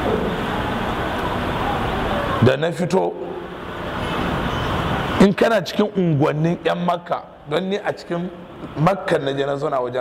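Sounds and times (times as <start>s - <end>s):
rushing background noise: 0.0s - 10.0s.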